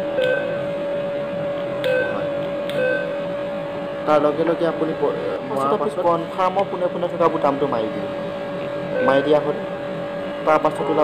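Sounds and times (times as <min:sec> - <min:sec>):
steady hum: 0:00.0 - 0:11.0
keypad beeps: 0:01.8 - 0:03.1.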